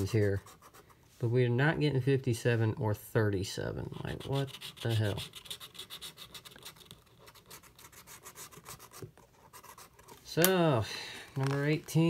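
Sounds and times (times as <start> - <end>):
scratch-off ticket rasping: 3.8 - 10.0.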